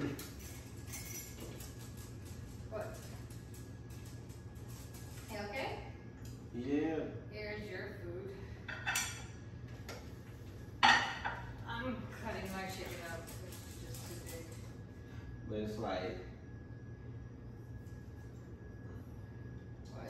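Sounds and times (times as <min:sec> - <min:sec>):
dishes and cutlery clinking: 0:08.7 - 0:09.4, 0:10.8 - 0:11.5.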